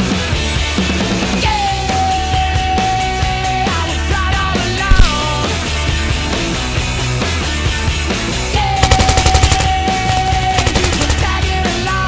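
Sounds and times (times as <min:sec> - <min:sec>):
loud rock music: 0:00.0 - 0:08.8, 0:09.6 - 0:12.0
automatic rifle fire: 0:04.9 - 0:05.4, 0:08.8 - 0:11.6.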